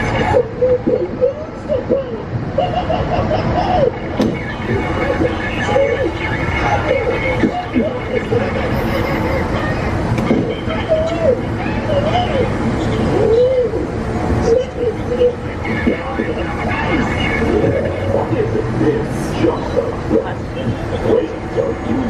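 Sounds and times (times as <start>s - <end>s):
indistinct voices: 0.0s - 22.0s
low rumble of vehicle noise: 0.0s - 22.0s.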